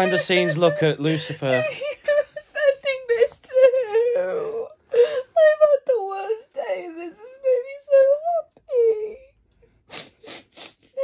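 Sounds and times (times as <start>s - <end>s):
woman crying: 0.0s - 11.0s.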